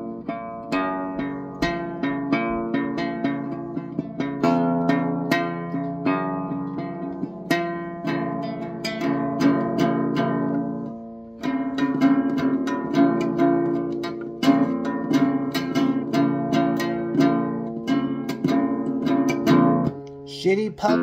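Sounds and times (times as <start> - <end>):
acoustic guitar plucked: 0.0 - 21.0.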